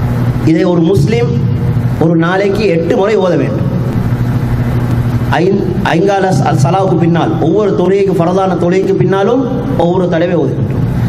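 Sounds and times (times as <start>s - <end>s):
steady low hum: 0.0s - 11.0s
man's amplified speech: 0.4s - 3.9s, 5.3s - 10.8s.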